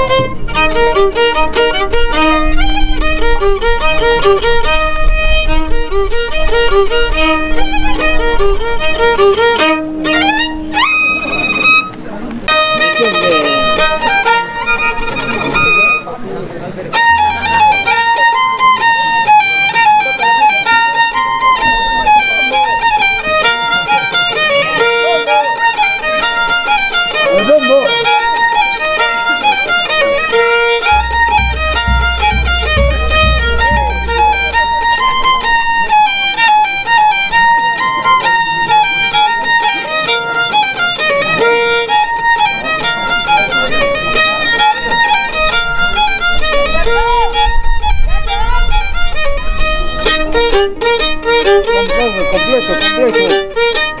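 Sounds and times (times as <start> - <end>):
fast folk violin melody: 0.0 - 54.0.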